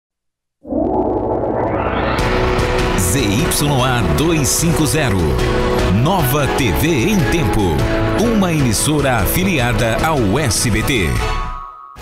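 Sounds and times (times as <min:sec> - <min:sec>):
synthesized swelling drone: 0:00.6 - 0:04.6.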